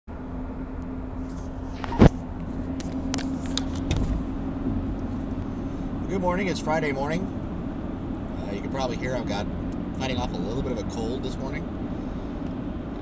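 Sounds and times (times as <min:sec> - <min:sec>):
car cabin road rumble: 0:00.1 - 0:13.0.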